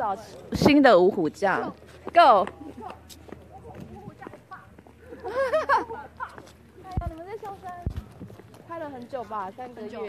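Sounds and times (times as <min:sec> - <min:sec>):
people talking: 0:00.0 - 0:08.0.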